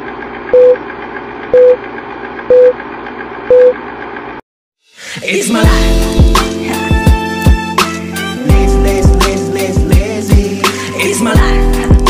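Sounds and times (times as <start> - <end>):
short beeps: 0.6 - 0.8, 1.6 - 1.8, 2.5 - 2.7, 3.5 - 3.8.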